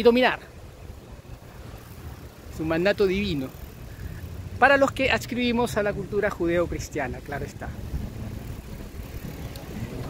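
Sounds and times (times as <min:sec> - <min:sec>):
faint street noise: 0:00.0 - 0:10.0
wind rumbling on microphone: 0:00.0 - 0:10.0.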